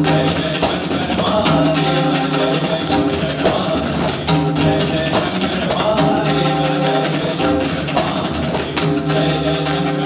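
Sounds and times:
tabla ensemble drumming: 0:00.0 - 0:10.0.

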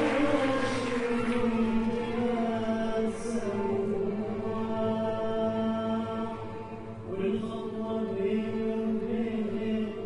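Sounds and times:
string instruments: 0:00.0 - 0:10.0
voices singing together: 0:00.0 - 0:10.0.

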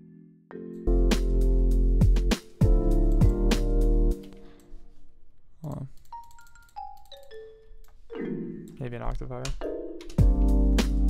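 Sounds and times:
jazzy loop with bass and hi-hat: 0:00.9 - 0:04.2, 0:10.1 - 0:11.0.

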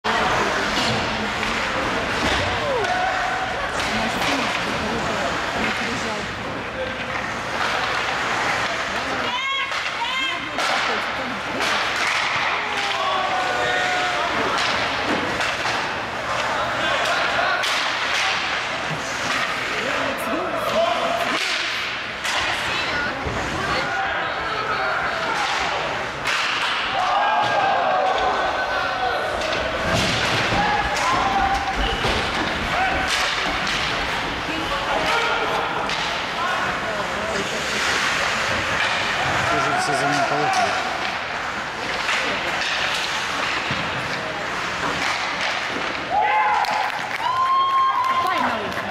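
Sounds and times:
hockey sticks and puck hitting boards: 0:00.1 - 0:06.0, 0:06.8 - 0:20.1, 0:20.7 - 0:24.0, 0:25.1 - 0:48.9.

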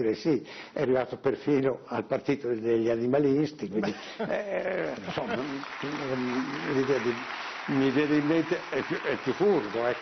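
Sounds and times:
man laughing: 0:03.8 - 0:05.6.

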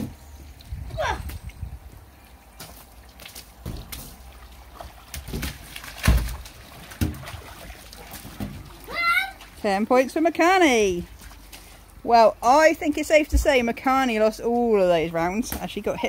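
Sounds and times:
wet splats: 0:02.6 - 0:09.6
water splashing on plastic slide: 0:02.6 - 0:11.9.

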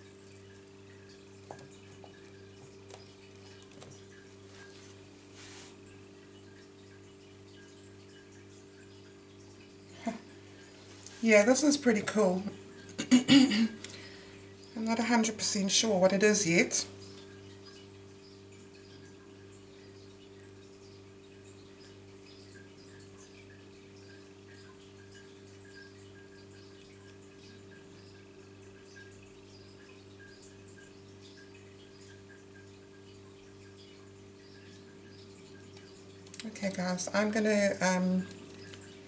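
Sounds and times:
paint dripping ticks: 0:00.0 - 0:04.9, 0:05.8 - 0:13.1, 0:13.8 - 0:39.0.

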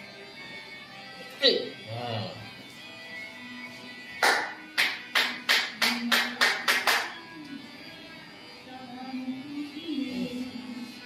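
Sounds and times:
background music: 0:00.0 - 0:11.0
hands slapping head and shoulders: 0:04.2 - 0:07.2.

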